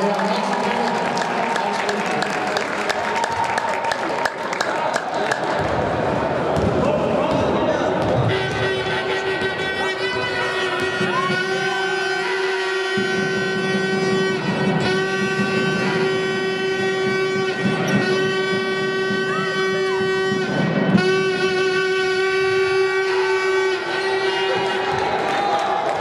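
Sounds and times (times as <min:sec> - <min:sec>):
basketball game noise: 0:00.0 - 0:26.0
horn blasts: 0:08.2 - 0:25.7.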